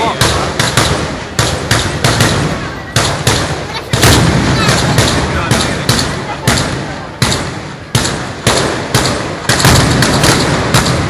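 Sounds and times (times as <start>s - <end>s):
mortar blasts: 0.0s - 11.0s.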